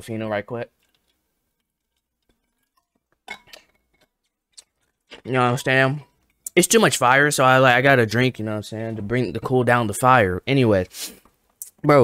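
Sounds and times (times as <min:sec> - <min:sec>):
bottle clinking: 0:02.2 - 0:04.2.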